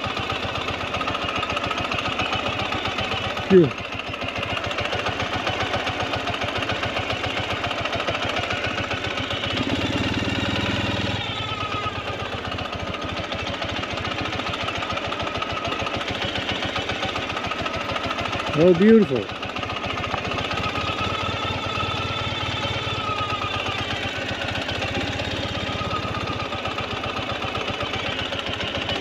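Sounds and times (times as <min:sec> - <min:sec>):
motorcycle engine at low revs: 0:00.0 - 0:29.0.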